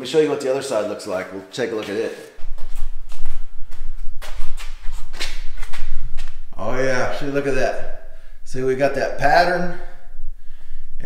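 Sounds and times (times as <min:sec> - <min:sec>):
footsteps walking: 0:01.7 - 0:07.7.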